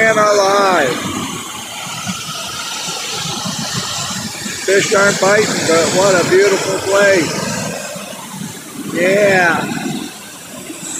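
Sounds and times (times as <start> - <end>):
water rushing over dam spillway: 0.0 - 10.9.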